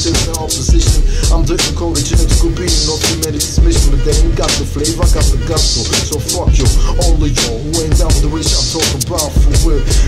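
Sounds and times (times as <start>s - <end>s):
drum beat with heavy bass: 0.0s - 10.0s
person rapping: 0.0s - 10.0s.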